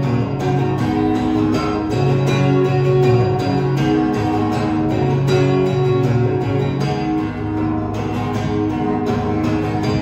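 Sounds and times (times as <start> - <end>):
acoustic guitar strumming: 0.0 - 10.0.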